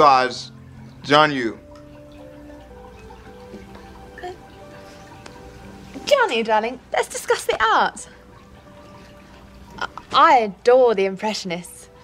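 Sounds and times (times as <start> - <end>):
dialogue: 0.0 - 12.0.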